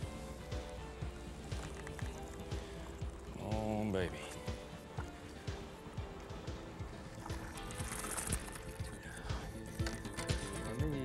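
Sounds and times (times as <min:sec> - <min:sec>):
music with steady low beat: 0:00.0 - 0:11.0.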